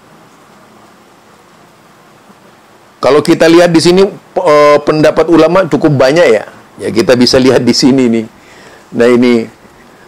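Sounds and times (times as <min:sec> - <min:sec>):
faint room tone hiss: 0:00.0 - 0:10.0.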